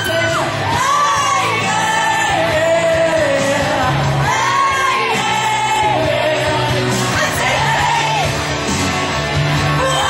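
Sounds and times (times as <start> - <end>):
person singing karaoke: 0.0 - 8.4, 9.6 - 10.0.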